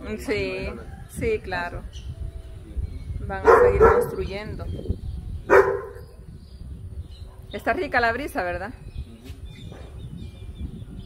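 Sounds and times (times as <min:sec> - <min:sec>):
wind rumbling on microphone: 0:00.0 - 0:11.0
dog barking: 0:03.4 - 0:04.3, 0:05.5 - 0:06.1.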